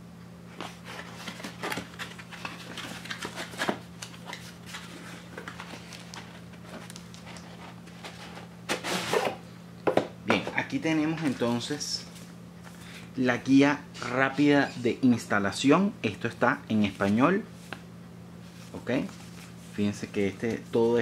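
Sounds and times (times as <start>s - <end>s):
cardboard rustle: 0.6s - 8.4s.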